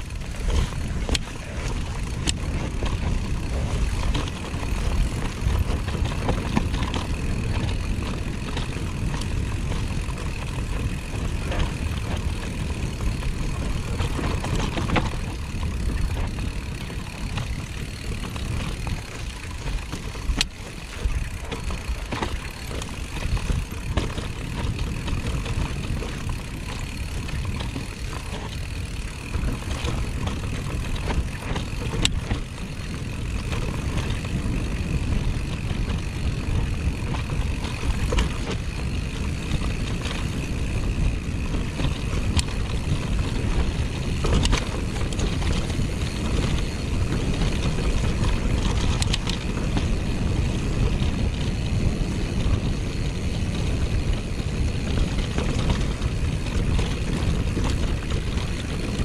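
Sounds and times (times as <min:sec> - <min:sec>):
bike rattling: 0:00.0 - 0:59.0
bike tyre noise: 0:00.0 - 0:59.0
wind rumbling on microphone: 0:00.0 - 0:59.0.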